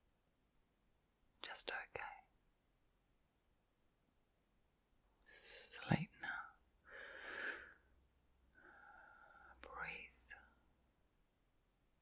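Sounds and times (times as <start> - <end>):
woman whispering: 1.4 - 2.3, 5.2 - 6.6, 9.4 - 10.6.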